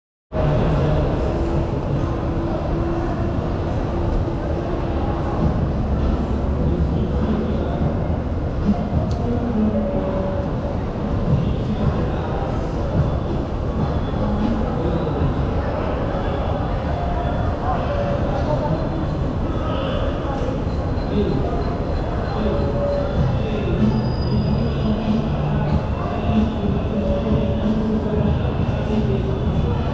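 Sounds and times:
people's voices: 0:00.4 - 0:29.9
low rumble and hum: 0:00.5 - 0:15.6.

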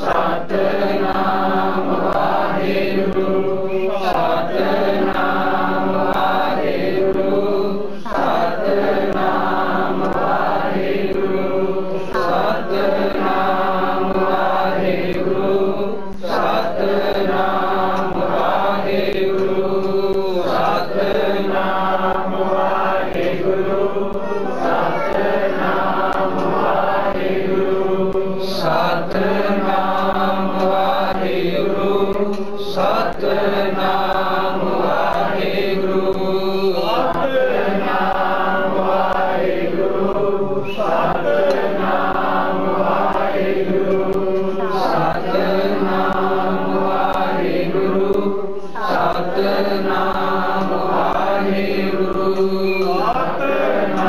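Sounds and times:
congregation chanting in unison: 0:00.0 - 0:54.0.

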